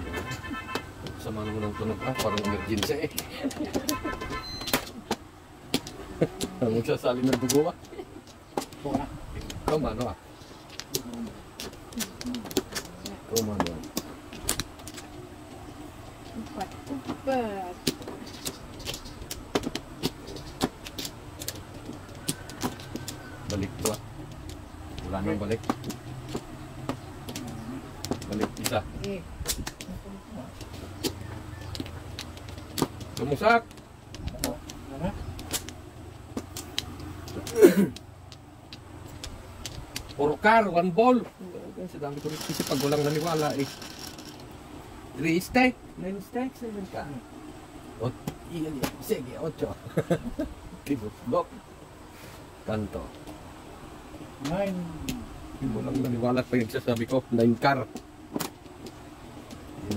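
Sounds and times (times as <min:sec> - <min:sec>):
voices talking: 0:00.0 - 0:59.9.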